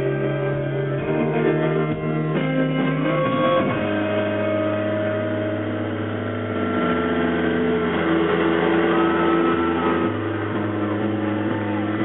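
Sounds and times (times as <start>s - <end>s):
sustained electric guitar drone: 0.0s - 12.0s.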